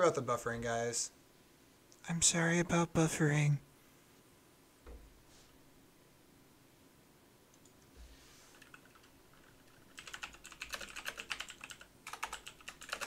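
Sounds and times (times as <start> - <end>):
computer keyboard typing: 8.5 - 13.0.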